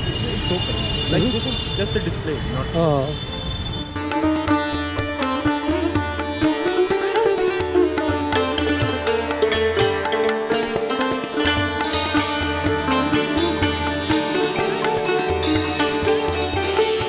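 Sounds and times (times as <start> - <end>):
sitar melody: 0.0 - 17.0.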